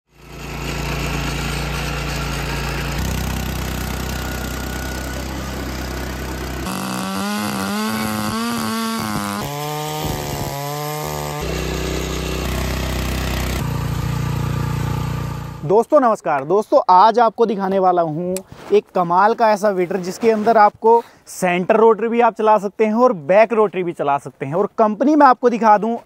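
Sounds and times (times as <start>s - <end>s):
small petrol engines under load: 0.1s - 15.8s
tines churning soil: 0.1s - 15.8s.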